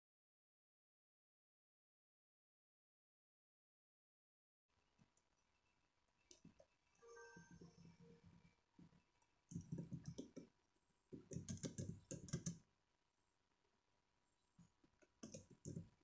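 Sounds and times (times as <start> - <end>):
laptop keyboard typing: 6.2 - 10.5, 11.2 - 12.7, 15.0 - 16.0.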